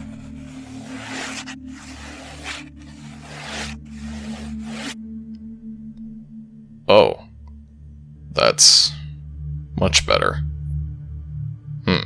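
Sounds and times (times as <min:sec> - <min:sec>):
writing scratching on paper: 0:00.0 - 0:05.0
ambient music drone: 0:00.0 - 0:12.0.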